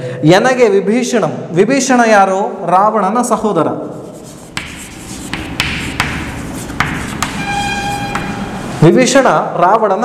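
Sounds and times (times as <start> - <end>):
chalk scratching: 3.9 - 8.8
chalk tapping on chalkboard: 4.0 - 8.6
chalk squeak: 4.0 - 8.8.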